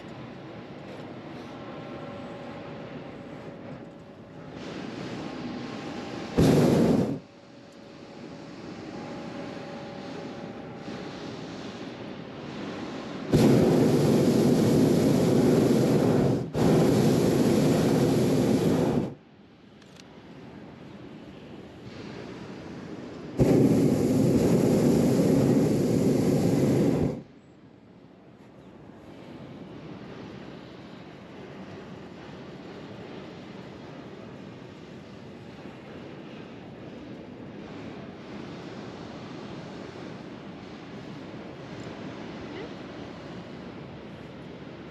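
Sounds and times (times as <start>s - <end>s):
propane burner blasts: 0.4s - 19.2s, 20.8s - 27.8s, 28.8s - 44.9s.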